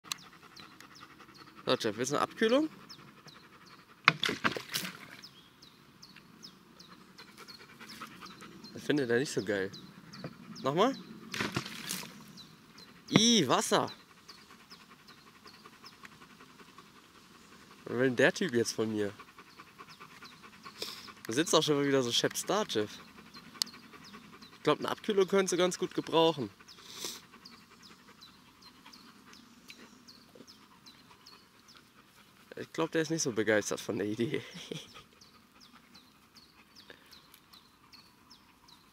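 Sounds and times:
small bird chirping: 0.1 - 3.9, 5.1 - 11.2, 11.8 - 33.2, 33.9 - 38.9
dog panting: 0.1 - 4.1, 6.6 - 11.5, 12.1 - 38.9.

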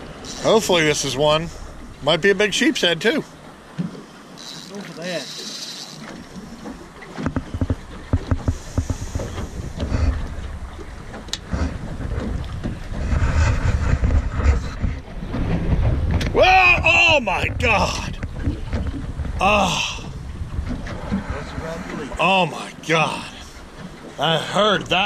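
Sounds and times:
water against boat hull: 0.0 - 25.0
sharp clicks and knocks: 5.4 - 9.9
wind noise on microphone: 7.2 - 22.1
fishing line snapping: 11.2 - 11.5
person shouting: 16.4 - 17.1.

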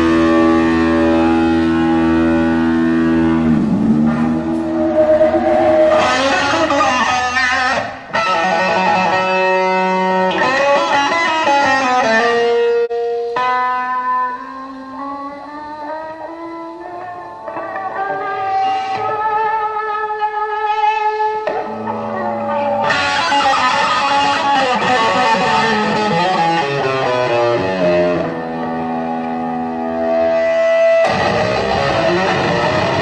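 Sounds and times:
electric guitar solo: 0.0 - 33.0.

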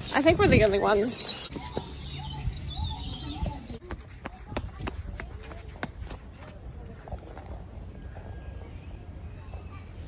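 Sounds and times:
birds chirping: 0.0 - 4.5.

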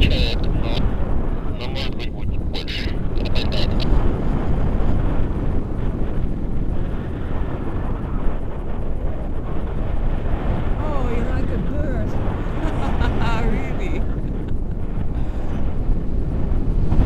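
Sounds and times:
wind rushing over microphone: 0.0 - 17.0.

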